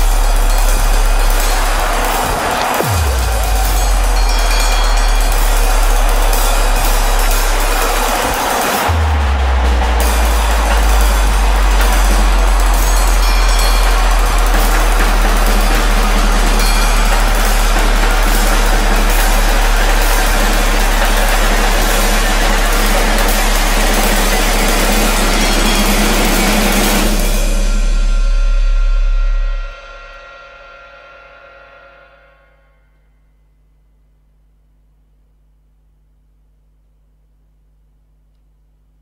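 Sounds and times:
noisy percussion wash: 0.0s - 32.8s
low drone: 8.8s - 30.2s.

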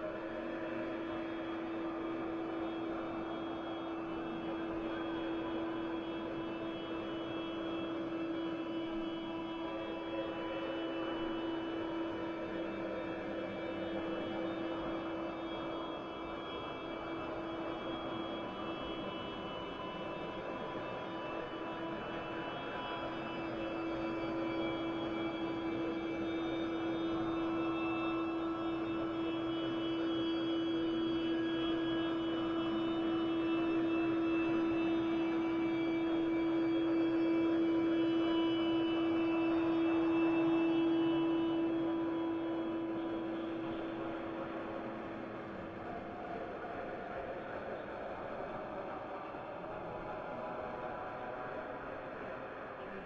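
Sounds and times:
ambient drone music: 0.0s - 45.9s.

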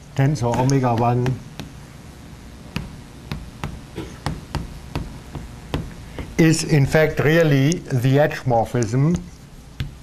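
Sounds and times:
chalk tapping on blackboard: 0.5s - 1.8s, 2.7s - 6.4s, 9.1s - 10.0s.

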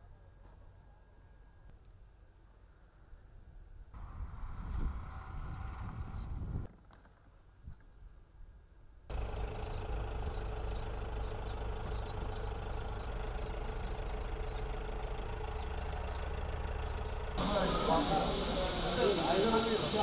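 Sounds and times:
machinery rumble with hum: 9.1s - 20.0s.

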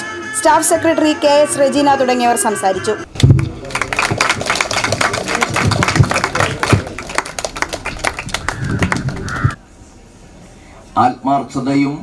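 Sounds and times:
crowd clapping: 3.1s - 9.6s.

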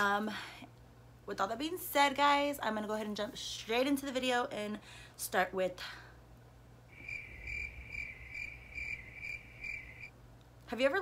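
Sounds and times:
cricket chirping: 6.9s - 10.1s.

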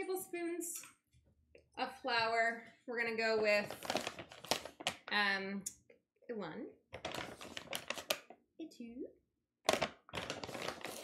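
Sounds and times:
flour bag rustling: 3.6s - 5.2s, 7.0s - 8.3s, 9.7s - 11.0s.

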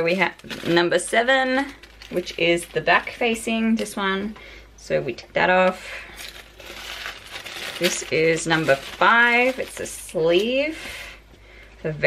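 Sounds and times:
tissue paper rustling: 6.1s - 10.7s.

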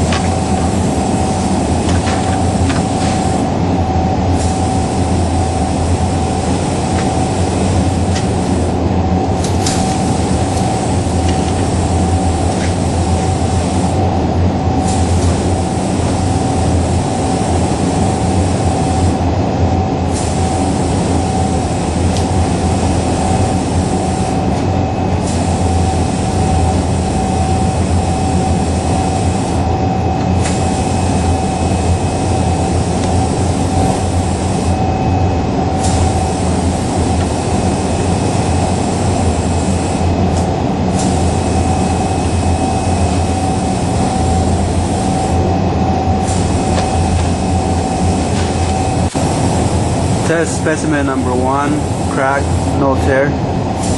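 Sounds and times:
machine humming with whine: 0.0s - 53.9s.

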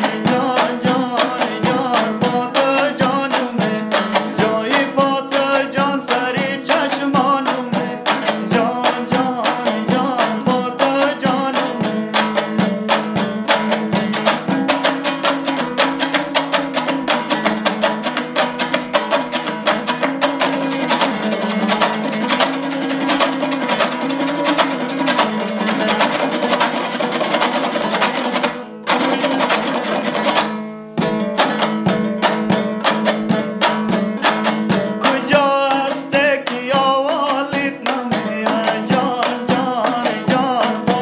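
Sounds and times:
lute strummed rapidly: 0.0s - 41.0s.

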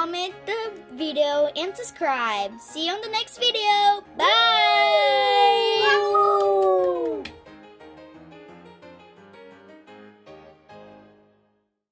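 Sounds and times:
soft keyboard music: 0.0s - 11.6s
voices cheering yay: 4.2s - 7.3s.

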